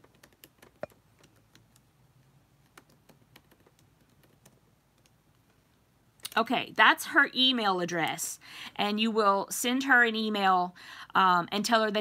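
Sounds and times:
computer keyboard typing: 0.0 - 1.9, 2.6 - 5.2.

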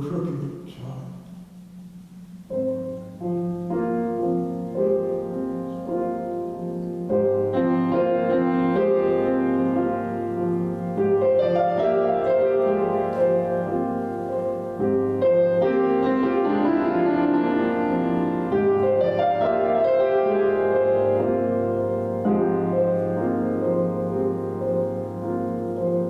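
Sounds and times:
grand piano chords: 0.0 - 26.0.

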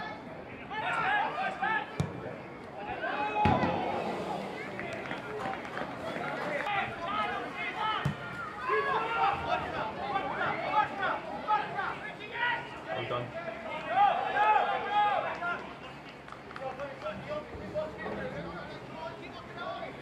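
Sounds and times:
voices shouting and talking: 0.0 - 20.0
ball being kicked: 2.0 - 2.2, 8.0 - 8.4.

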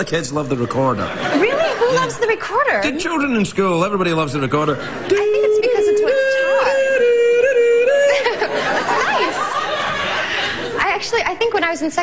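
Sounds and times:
man vocally imitating a recorder: 5.1 - 8.3.

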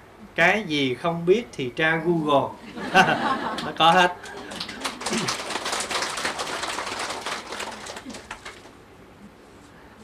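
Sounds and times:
audience laughing: 2.6 - 5.5
audience clapping: 3.4 - 8.8.

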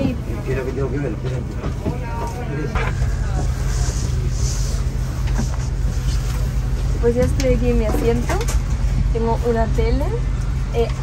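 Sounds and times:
cabin air system hum: 0.0 - 11.0
faint passenger chatter: 0.0 - 11.0.

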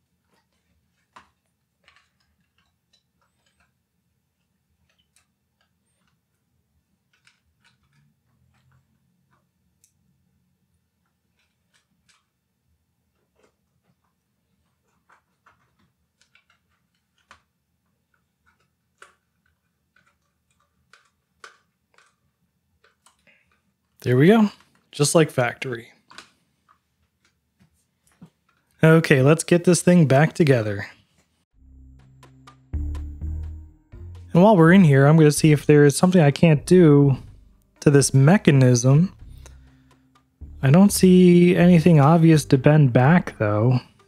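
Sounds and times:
clicks and taps of small parts: 0.3 - 3.8, 4.4 - 6.5, 7.1 - 10.0, 11.0 - 12.4, 13.1 - 25.0, 25.9 - 28.8.

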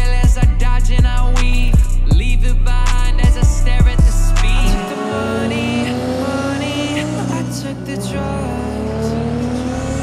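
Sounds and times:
sports car engine accelerating: 0.0 - 10.0.

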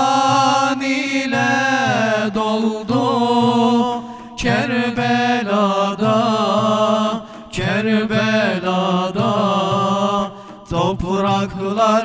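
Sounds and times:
frame drums: 0.0 - 12.0
male vocal group singing: 0.0 - 12.0.

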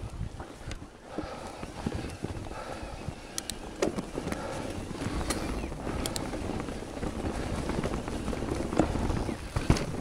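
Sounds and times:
bike rattling: 0.0 - 10.0
bike tyre rumble on dirt: 0.0 - 10.0
wheels knocking on roots: 0.0 - 10.0.

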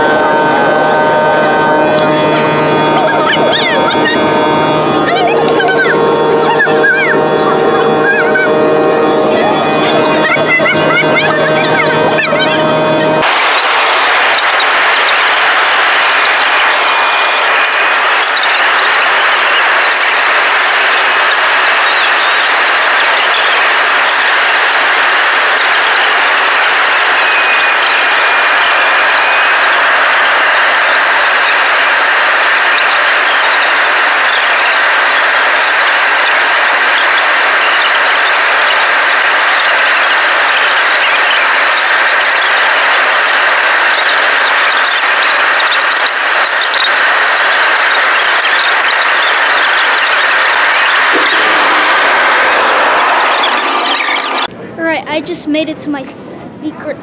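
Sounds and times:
faint high whistle: 0.0 - 54.5
jet engines and airflow rushing: 0.3 - 54.5.

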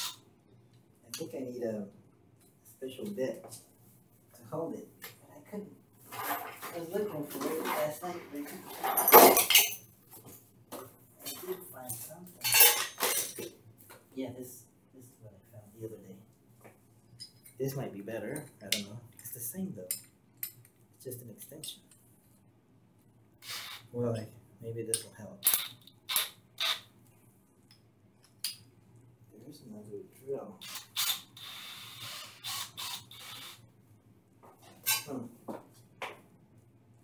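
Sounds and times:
low room noise: 0.0 - 37.0
metal tools clinking and rattling: 8.7 - 10.3, 11.2 - 13.5.

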